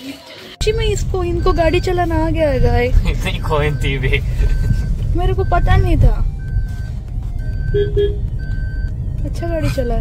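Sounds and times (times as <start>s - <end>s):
low engine rumble: 0.6s - 10.0s
reversing beeper: 3.0s - 9.1s.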